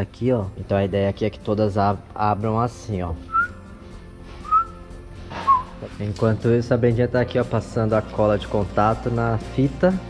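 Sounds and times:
faint background music: 0.0 - 10.0
whistled notes: 3.2 - 3.7, 4.4 - 5.9.

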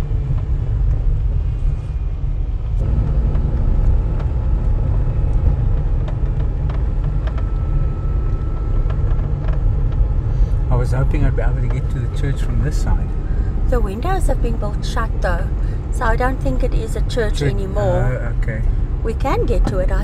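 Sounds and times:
car rolling on dirt road: 0.0 - 20.0.

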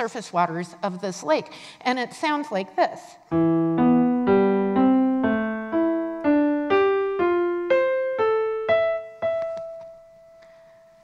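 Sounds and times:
electronic keyboard piano notes: 3.3 - 11.0.

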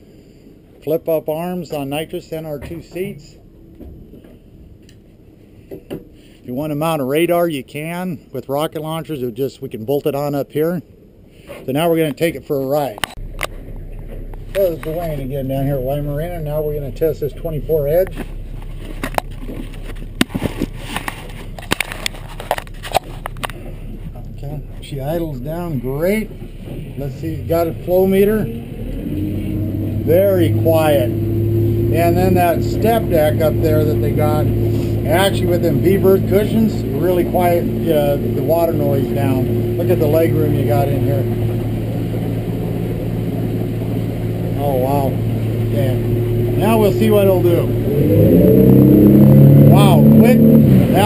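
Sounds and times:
water against hull: 0.0 - 8.0, 11.2 - 51.0
outboard engine idling: 13.1 - 51.0.

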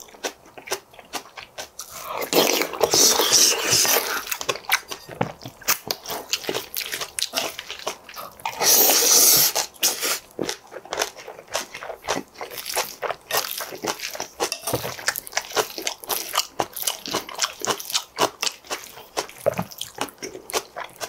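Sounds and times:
crunchy chewing: 0.0 - 21.0.

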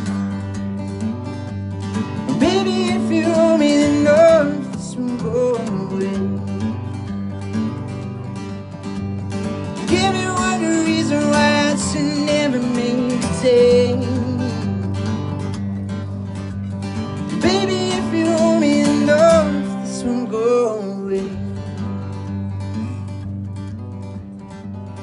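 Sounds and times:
acoustic guitar: 0.0 - 25.0
man singing into a microphone: 2.2 - 6.8, 9.8 - 15.1, 17.3 - 21.8.

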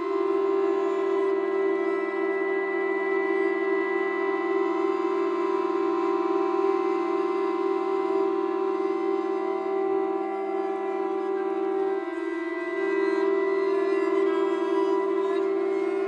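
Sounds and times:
chamber music drone: 0.0 - 16.0.

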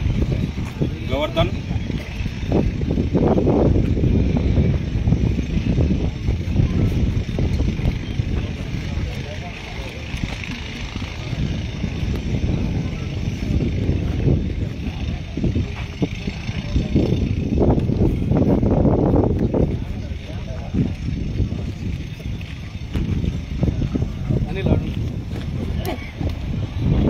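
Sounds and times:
murmur of crowd voices: 0.0 - 27.0
wind buffeting microphone: 0.0 - 27.0.

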